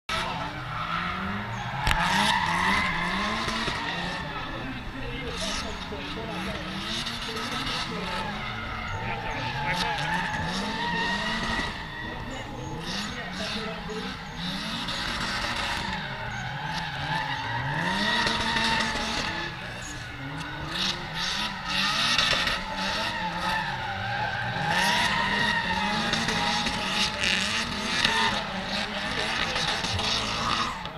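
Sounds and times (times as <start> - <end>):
rally car engines revving: 0.0 - 30.9
tyre squeal: 0.1 - 4.7, 5.3 - 30.9.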